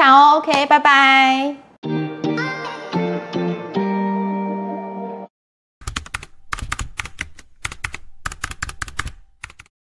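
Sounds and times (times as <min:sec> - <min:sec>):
keyboard typing clicks: 0:05.8 - 0:09.7.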